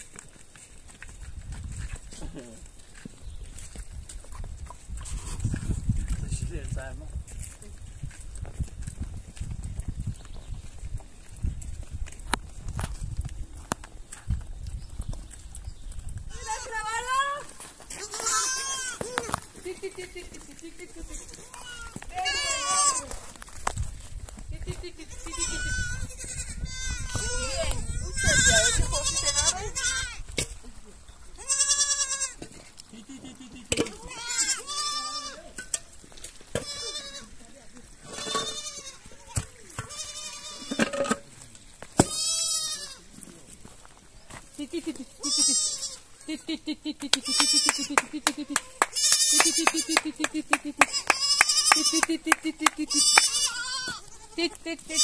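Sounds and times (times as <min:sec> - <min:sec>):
goat kids bleating: 0:16.3 - 0:19.5, 0:21.0 - 0:23.2, 0:24.9 - 0:30.2, 0:31.3 - 0:35.6, 0:36.6 - 0:37.4, 0:38.2 - 0:40.8, 0:42.1 - 0:43.1, 0:45.1 - 0:50.2, 0:50.8 - 0:52.2, 0:52.8 - 0:55.0.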